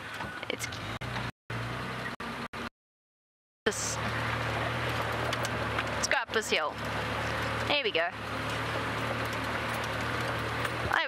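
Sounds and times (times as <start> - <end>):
tyres on dirt track: 0.0 - 2.7, 3.7 - 11.0
vehicle engine humming: 0.0 - 2.7, 3.7 - 11.0.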